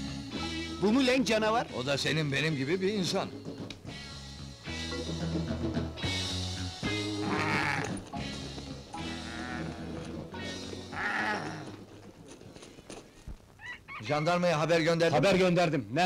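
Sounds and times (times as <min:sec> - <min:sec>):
wavering bleat-like cry: 0:07.0 - 0:08.0, 0:09.0 - 0:11.8.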